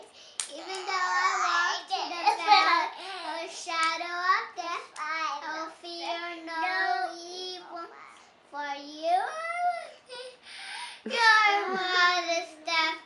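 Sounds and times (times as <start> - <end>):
girl chanting: 0.0 - 9.8, 11.0 - 13.0.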